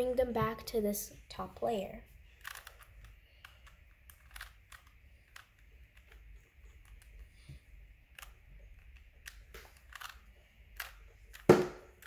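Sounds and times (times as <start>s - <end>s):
puzzle cube clicking: 2.4s - 7.3s, 8.0s - 12.0s.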